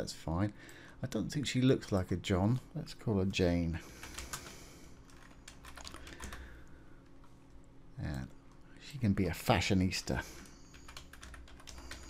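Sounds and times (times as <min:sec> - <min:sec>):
computer keyboard typing: 0:04.0 - 0:06.5, 0:10.4 - 0:12.0.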